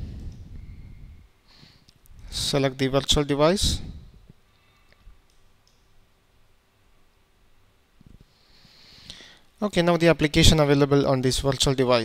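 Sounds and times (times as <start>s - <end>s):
faint computer mouse clicks: 4.8s - 5.9s.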